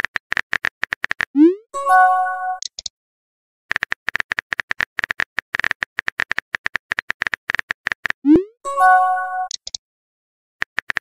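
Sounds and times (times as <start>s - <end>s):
chime-like message tone: 1.8s - 2.6s, 8.7s - 9.5s.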